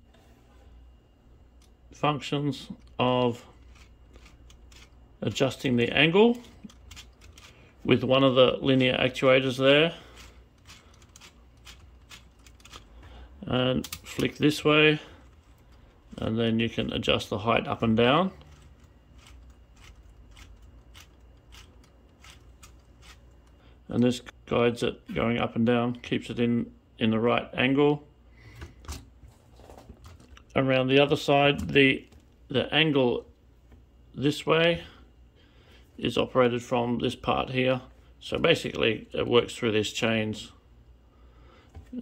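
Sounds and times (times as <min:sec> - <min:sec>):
plastic toy parts clicking: 0:10.6 - 0:12.9.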